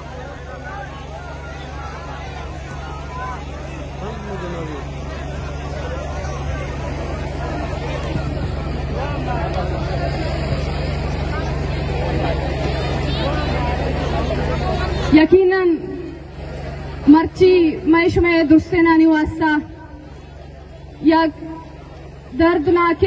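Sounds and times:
crowd talking: 0:00.0 - 0:23.0
steady low hum: 0:00.0 - 0:23.0.

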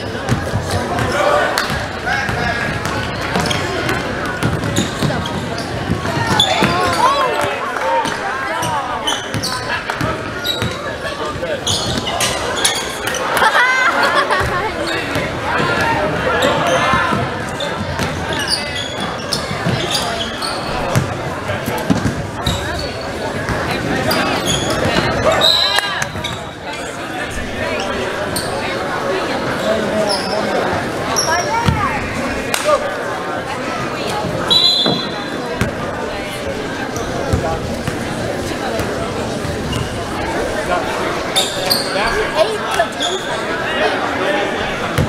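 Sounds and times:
sneaker squeaks: 0:00.0 - 0:13.4, 0:14.4 - 0:21.2, 0:21.8 - 0:26.8, 0:27.8 - 0:28.8, 0:29.5 - 0:31.9, 0:34.1 - 0:35.8, 0:38.8 - 0:40.2, 0:41.2 - 0:43.6
voices echoing in gym: 0:00.0 - 0:45.0.

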